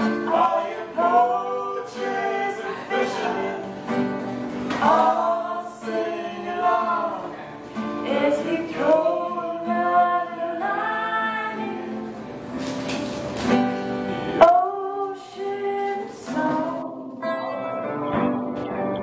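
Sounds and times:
woman and man singing: 0.0s - 12.3s, 14.2s - 17.3s
acoustic guitar: 0.0s - 19.0s.

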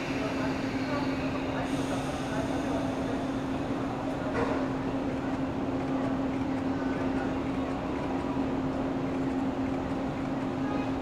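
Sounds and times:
electric train humming: 0.0s - 10.6s.

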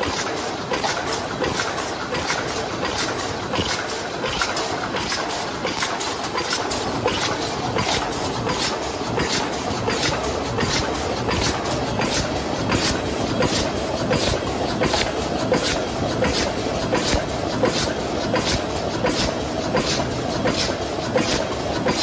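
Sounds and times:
machine clattering with clicks: 0.0s - 22.0s.

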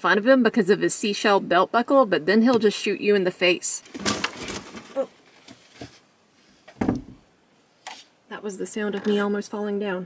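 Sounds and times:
scuffing thump of stumbling: 6.7s - 7.2s.

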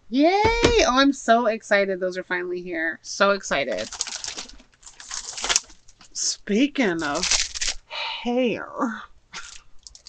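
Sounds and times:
rustling and handling noise: 3.5s - 7.9s, 9.4s - 10.0s.

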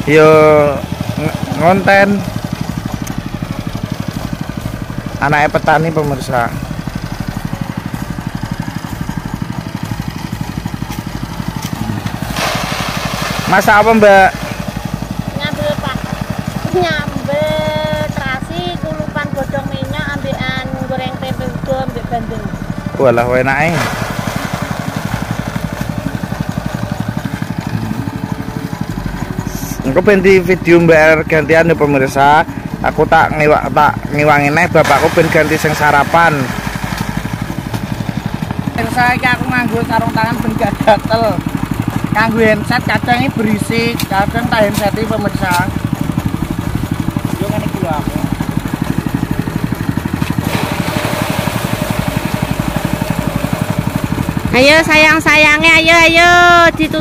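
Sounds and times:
rice thresher engine running: 0.0s - 57.0s.

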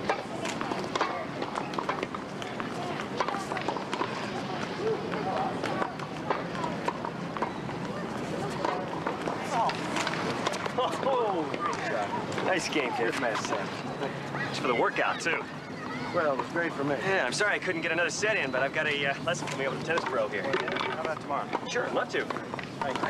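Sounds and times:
tennis balls bouncing on court: 0.0s - 12.5s, 19.9s - 23.0s.

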